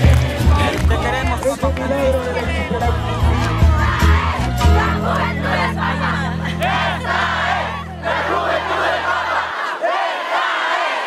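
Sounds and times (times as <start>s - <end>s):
loud music with pulsing bass: 0.0s - 8.0s
crowd shouting and cheering: 0.0s - 11.0s.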